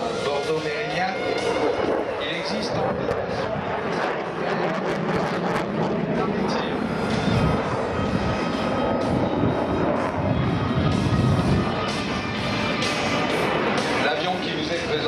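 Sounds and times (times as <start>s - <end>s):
jet engines roaring: 0.0s - 15.0s.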